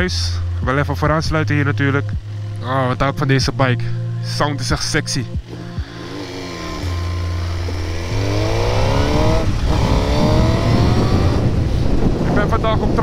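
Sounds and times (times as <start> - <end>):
wind and road noise: 0.0 - 13.0
motorcycle engine accelerating hard: 5.4 - 12.4.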